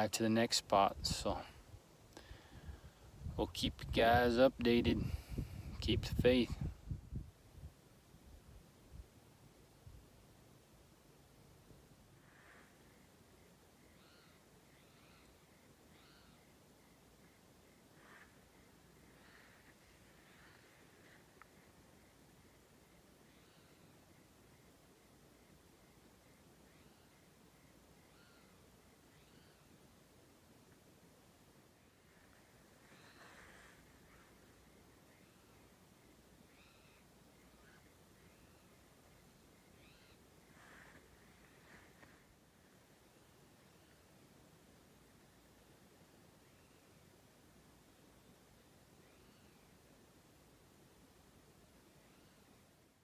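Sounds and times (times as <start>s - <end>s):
faint bird chirps: 9.0s - 53.0s.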